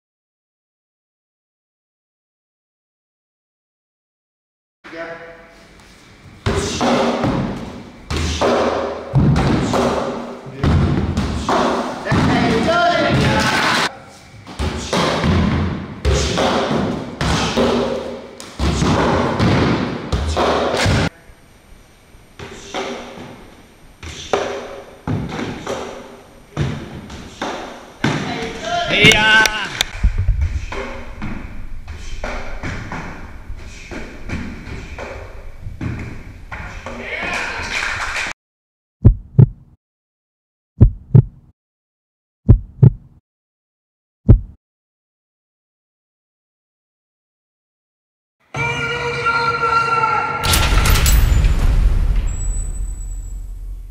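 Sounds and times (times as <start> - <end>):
punches thudding on padded posts: 6.4 - 12.7, 26.6 - 28.6
low hum: 29.9 - 33.7, 50.5 - 53.9.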